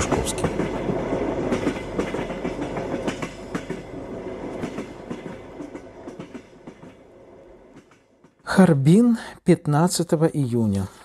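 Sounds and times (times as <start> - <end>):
train wheels clattering on rails: 0.0 - 8.5.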